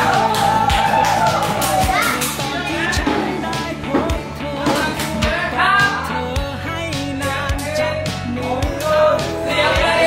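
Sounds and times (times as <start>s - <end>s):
bass line: 0.0s - 10.0s
pop song with vocals: 0.0s - 10.0s
drum hits: 2.9s - 5.2s.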